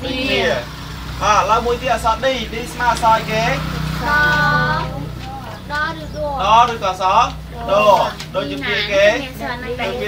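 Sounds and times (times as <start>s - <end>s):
voices repeating a word: 0.0s - 10.0s.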